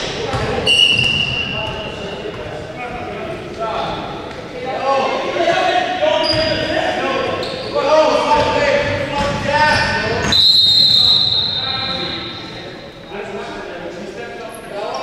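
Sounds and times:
players calling out: 0:00.1 - 0:13.2.

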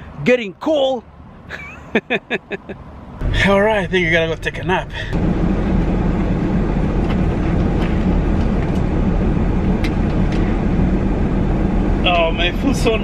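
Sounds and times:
idling engine in car cabin: 0:03.2 - 0:13.0.

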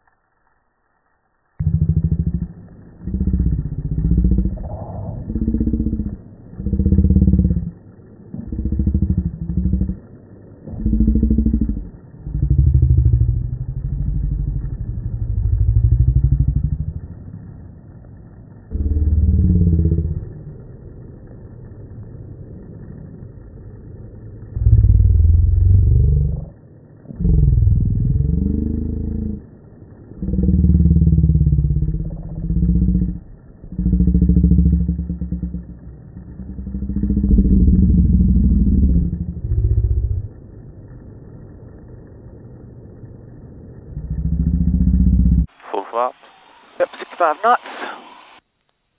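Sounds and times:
slowed voices in deep groans: 0:01.6 - 0:17.4, 0:18.6 - 0:23.7, 0:24.4 - 0:42.1, 0:43.6 - 0:46.4.

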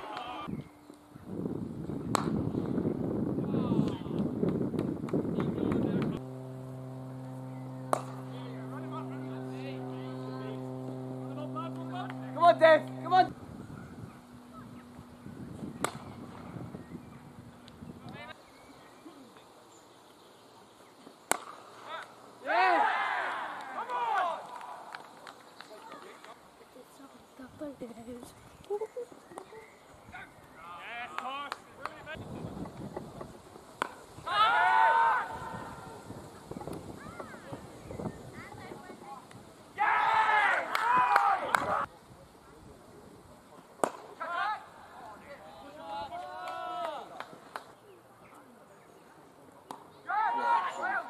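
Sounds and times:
rough uneven rumble: 0:00.4 - 0:18.3
bat striking ball: 0:02.1 - 0:02.4, 0:07.6 - 0:09.6, 0:14.1 - 0:16.6, 0:21.3 - 0:21.6
cricket bat striking ball: 0:02.1 - 0:02.4, 0:15.7 - 0:16.6
steady hum: 0:05.2 - 0:18.4
players shouting: 0:22.4 - 0:24.9.

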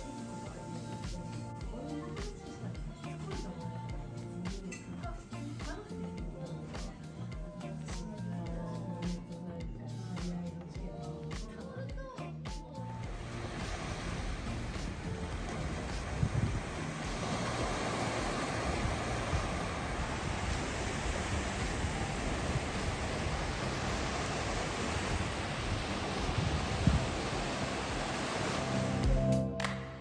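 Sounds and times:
sea waves washing onto beach: 0:13.0 - 0:29.4
wind buffeting microphone: 0:13.1 - 0:28.8.

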